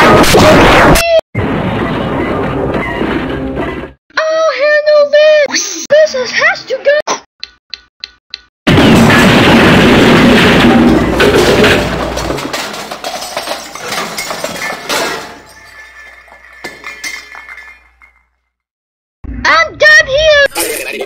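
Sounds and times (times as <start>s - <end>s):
glass shattering crash: 8.7s - 18.4s
falling glass shards tinkling: 12.5s - 18.4s.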